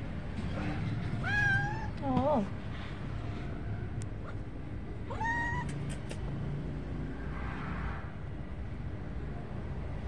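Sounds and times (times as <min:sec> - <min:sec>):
cat meowing: 0:01.2 - 0:02.0, 0:05.1 - 0:06.2.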